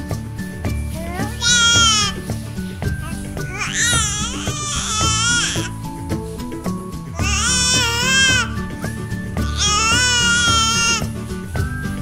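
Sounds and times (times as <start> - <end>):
background music: 0.0 - 12.0
baby high-pitched vocalizing: 1.0 - 2.2, 3.0 - 5.8, 7.2 - 8.6, 9.4 - 11.0.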